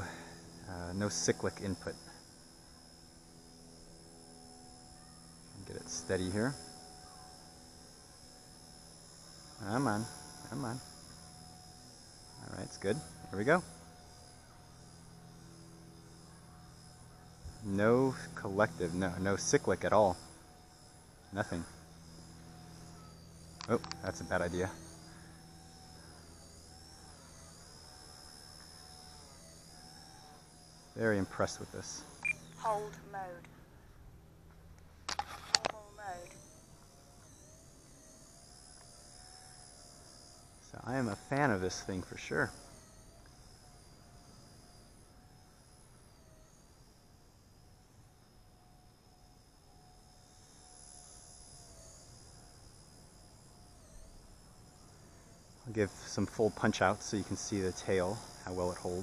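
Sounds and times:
toy helicopter rotor whine: 0:00.0 - 0:59.0.

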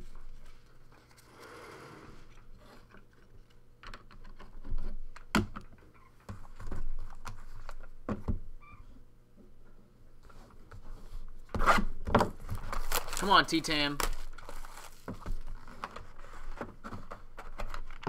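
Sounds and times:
card packs rustling: 0:12.4 - 0:16.5.

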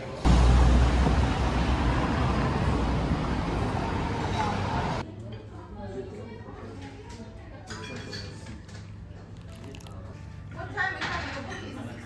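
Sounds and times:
traffic rumble: 0:00.2 - 0:05.0
voices of passers-by: 0:00.3 - 0:05.0.

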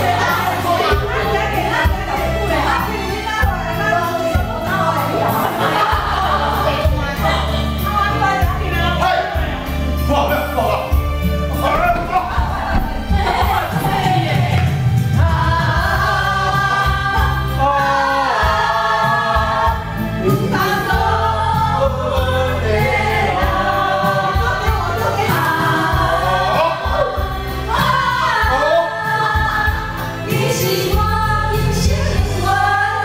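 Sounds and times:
karaoke song with bass beat: 0:00.0 - 0:10.0, 0:10.6 - 0:33.0
people singing into microphones: 0:00.0 - 0:33.0.

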